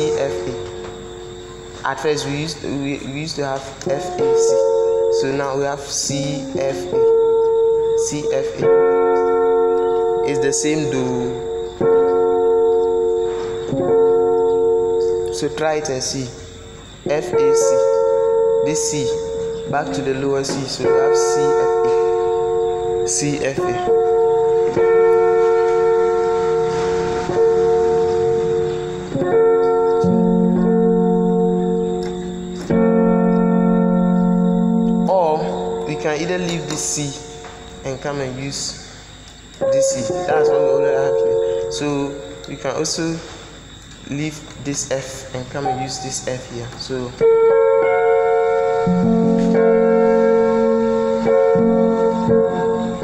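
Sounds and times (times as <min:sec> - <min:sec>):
electronic keyboard chords: 0:00.0 - 0:53.0.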